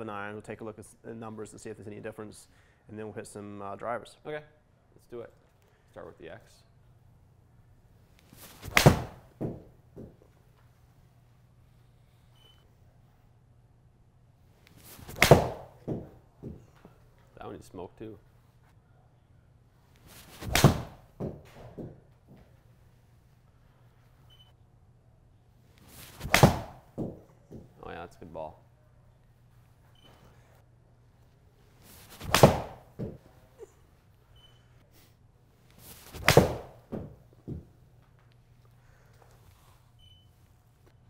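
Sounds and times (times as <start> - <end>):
golf club swish: 31.8 - 32.9.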